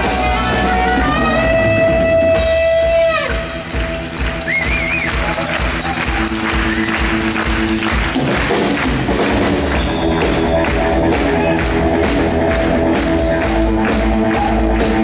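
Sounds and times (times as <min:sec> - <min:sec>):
drum kit beat: 0:00.0 - 0:15.0
live rock band playing: 0:00.0 - 0:15.0.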